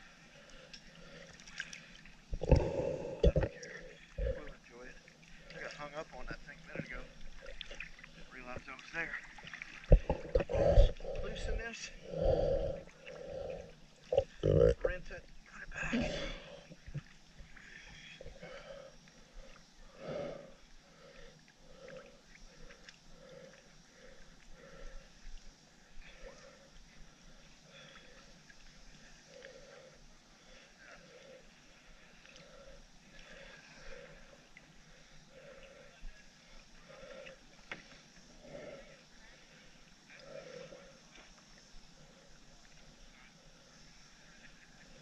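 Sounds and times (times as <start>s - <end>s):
water gurgling and lapping: 0.0s - 45.0s.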